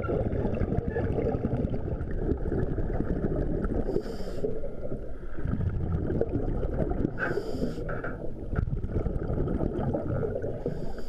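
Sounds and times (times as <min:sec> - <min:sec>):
underwater rumble of moving water: 0:00.0 - 0:11.0.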